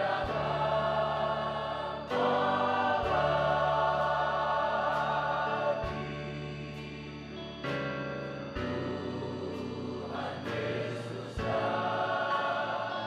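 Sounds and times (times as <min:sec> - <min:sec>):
choir singing a worship song: 0:00.0 - 0:13.0.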